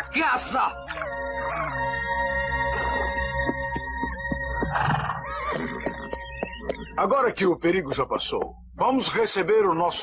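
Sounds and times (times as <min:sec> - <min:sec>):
background music chords: 0:00.0 - 0:05.2
horse whinnying: 0:04.6 - 0:06.1.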